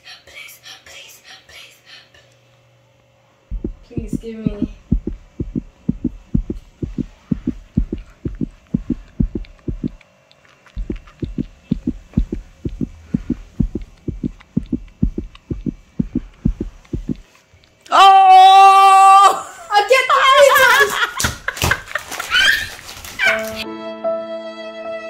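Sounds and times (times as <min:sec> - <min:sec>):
heartbeat thumps: 0:03.5 - 0:10.0, 0:10.8 - 0:17.3.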